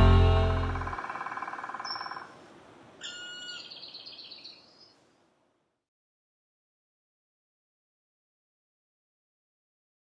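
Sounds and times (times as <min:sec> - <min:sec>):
song's last chord: 0:00.0 - 0:01.0
bird call with fast trill: 0:00.6 - 0:02.3, 0:03.0 - 0:04.7.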